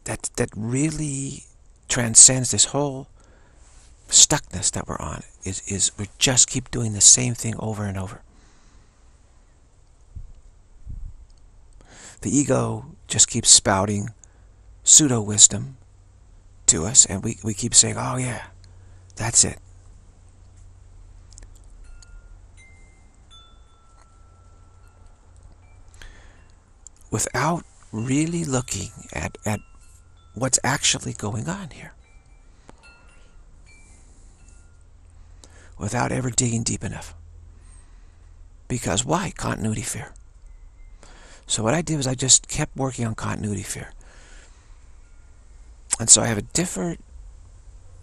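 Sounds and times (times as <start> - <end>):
man's voice: 0.0 - 3.1, 4.1 - 8.2, 12.2 - 14.2, 14.8 - 15.8, 16.7 - 18.6, 19.2 - 19.6, 27.1 - 29.6, 30.4 - 32.0, 35.8 - 37.2, 38.7 - 40.2, 41.5 - 44.0, 45.9 - 47.0
faint steady hiss: 0.0 - 48.0
low steady hum: 0.0 - 48.0
faint chime notes: 21.8 - 36.2, 39.7 - 41.4, 44.1 - 48.0.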